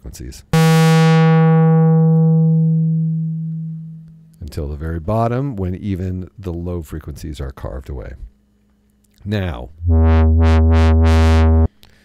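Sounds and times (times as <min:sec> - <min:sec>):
synthesizer low note with filter sweep: 0:00.6 - 0:04.4, 0:09.8 - 0:11.7.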